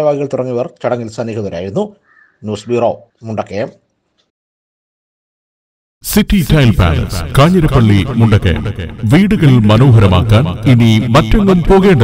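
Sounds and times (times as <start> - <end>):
man speaking: 6.0 - 12.0.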